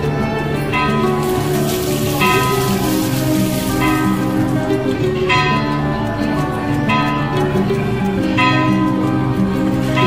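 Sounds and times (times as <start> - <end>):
devotional music: 0.0 - 10.0
water splashing over stone: 1.1 - 5.0.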